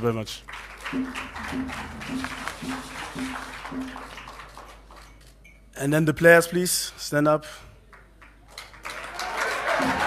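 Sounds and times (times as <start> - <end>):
audience applauding: 0.4 - 5.2, 8.2 - 10.0.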